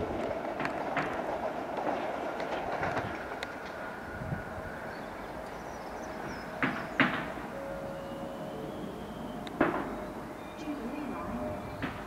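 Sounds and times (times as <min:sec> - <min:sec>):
train wheel-on-rail rumble: 0:00.0 - 0:12.0
wheels clicking over rail joints: 0:00.0 - 0:12.0.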